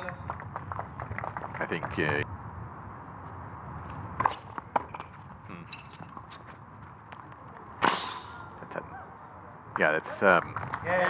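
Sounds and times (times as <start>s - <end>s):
players' footsteps: 0.0s - 2.2s, 3.2s - 7.9s.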